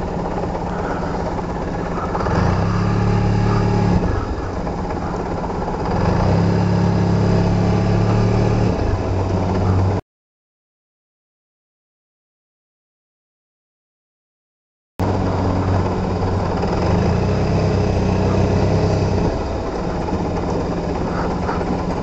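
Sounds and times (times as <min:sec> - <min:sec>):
scooter engine running: 0:00.0 - 0:10.0, 0:15.0 - 0:22.0.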